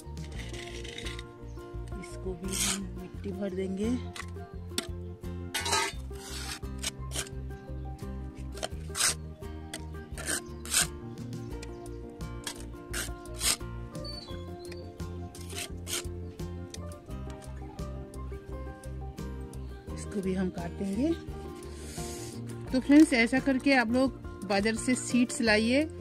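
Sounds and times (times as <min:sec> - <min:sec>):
gritty soil scrapes: 0:00.0 - 0:17.7, 0:20.0 - 0:25.9
background music with steady beat: 0:00.0 - 0:26.0.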